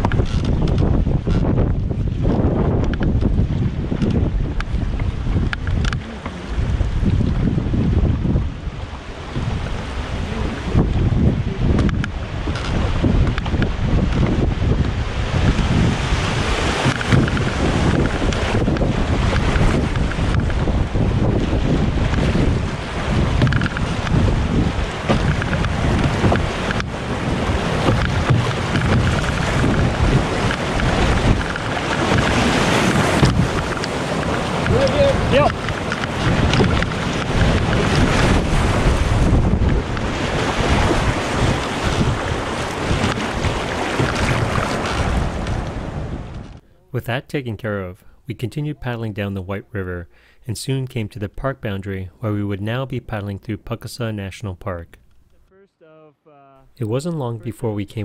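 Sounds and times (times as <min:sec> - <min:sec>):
wind buffeting microphone: 0:00.0 - 0:46.6
whitewater rapids rushing: 0:21.7 - 0:45.2.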